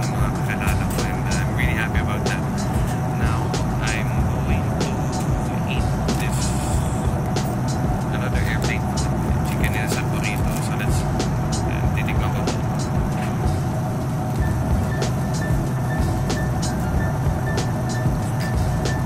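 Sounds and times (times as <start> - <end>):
airliner cabin drone: 0.0 - 19.0.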